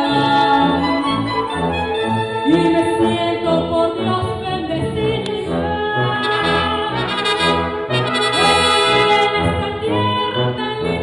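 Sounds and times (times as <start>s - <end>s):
woman singing: 0.0s - 1.6s, 2.4s - 11.0s
brass band playing: 0.0s - 4.6s, 5.4s - 11.0s.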